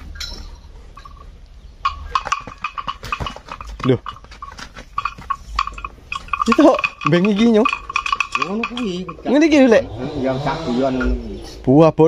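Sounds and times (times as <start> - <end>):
light metallic clinks: 0.0 - 9.6.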